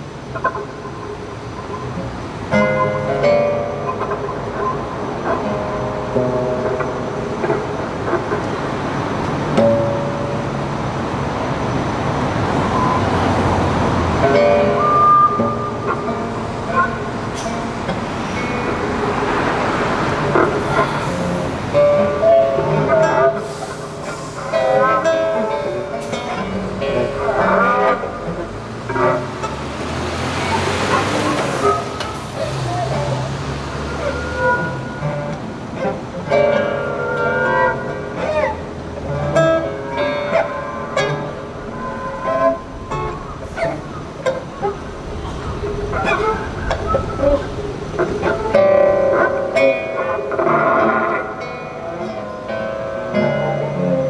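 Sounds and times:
acoustic guitars: 0.0 - 54.0
cars passing: 0.0 - 54.0
cello: 0.2 - 54.0.

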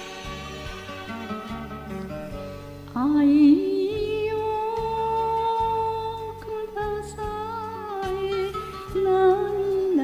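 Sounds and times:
backing track with pulsing bass: 0.0 - 10.0.

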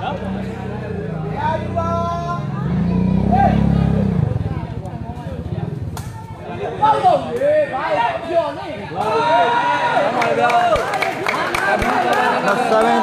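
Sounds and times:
men talking and calling out: 0.0 - 13.0
spectators chatter: 0.0 - 13.0.

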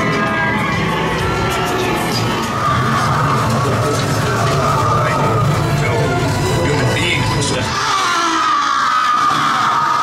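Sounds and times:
noisy din: 0.0 - 10.0
long high-pitched scream: 7.6 - 10.0.

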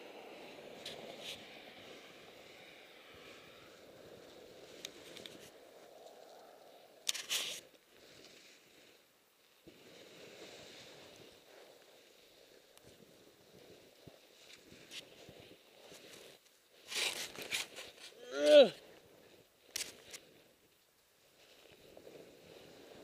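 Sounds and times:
short sharp scrape: 7.1 - 7.6, 16.8 - 18.1
snow crunching: 21.2 - 23.0.

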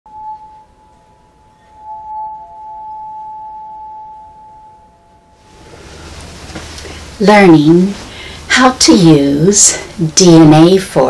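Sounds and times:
bell-like ringing tones: 0.1 - 5.4.

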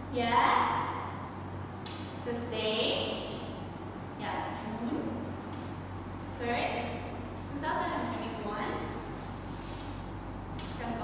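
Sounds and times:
low electrical hum: 0.0 - 11.0
woman speaking: 6.3 - 9.0, 10.8 - 11.0.

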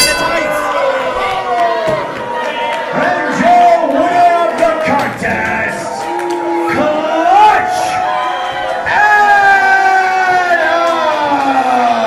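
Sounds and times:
crowd noise in a hall: 0.0 - 12.0.

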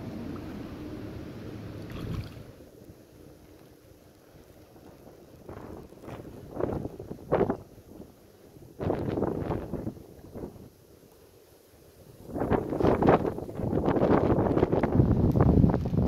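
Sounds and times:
fish thrashing and splashing: 1.9 - 2.5
wind buffeting microphone: 4.9 - 10.8, 12.0 - 16.0.

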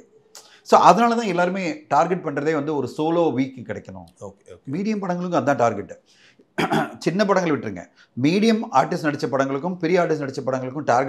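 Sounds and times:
man speaking: 0.0 - 6.0, 6.6 - 11.0
breath in: 6.0 - 6.5.

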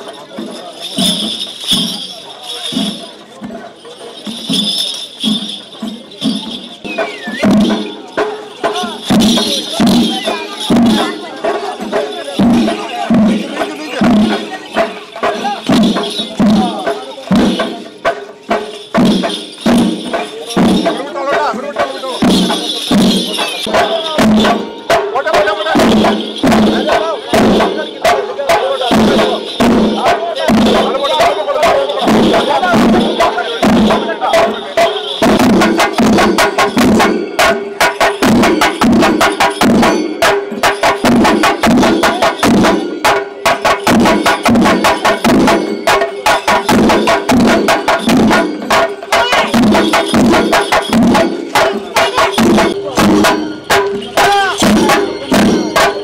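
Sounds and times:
crowd voices: 0.0 - 56.0
metallic jingling: 0.0 - 56.0
steady drum beat: 0.0 - 56.0.

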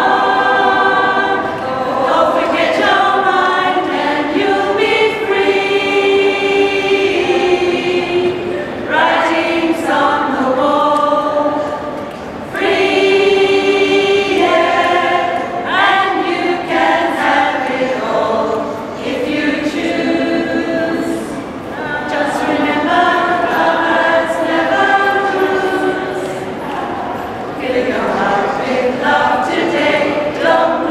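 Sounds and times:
choir singing in harmony: 0.0 - 30.9.

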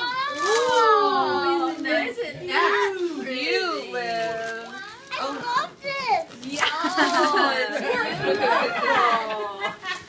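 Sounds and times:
people talking and exclaiming: 0.0 - 10.0.

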